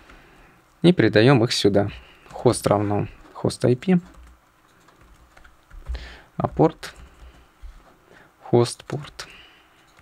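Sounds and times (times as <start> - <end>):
soft keyboard typing: 2.2 - 7.5, 8.8 - 10.0.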